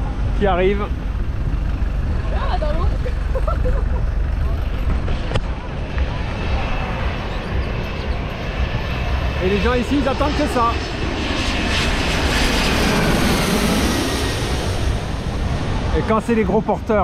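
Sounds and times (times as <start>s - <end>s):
jet engines whining: 0.0s - 17.0s
wind: 0.0s - 17.0s.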